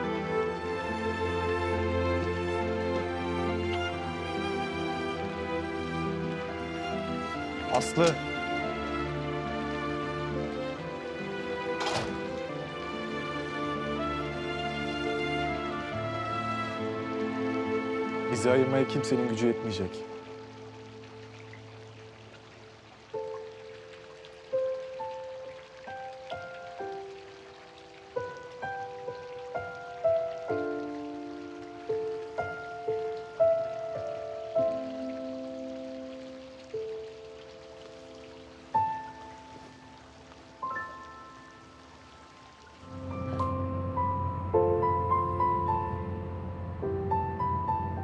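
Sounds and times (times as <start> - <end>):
slow gentle melody: 0.0 - 48.0.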